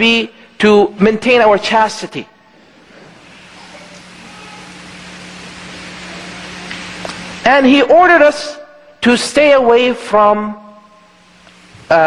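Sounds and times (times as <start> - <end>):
low electrical hum: 0.0 - 12.0
steady hiss: 0.1 - 12.0.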